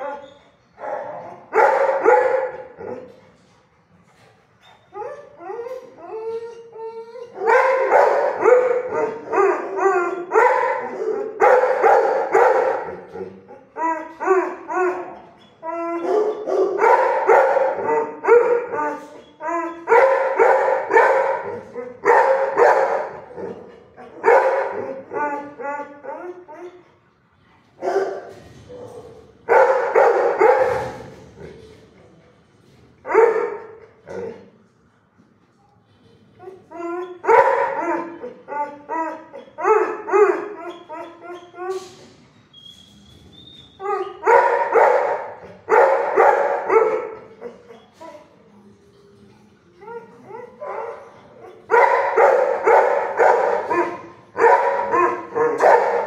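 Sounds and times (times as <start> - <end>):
dogs barking: 0.8 - 3.1, 7.3 - 15.2, 15.8 - 26.8, 27.8 - 31.1, 33.0 - 34.3, 36.7 - 41.7, 43.8 - 47.6, 49.9 - 56.0.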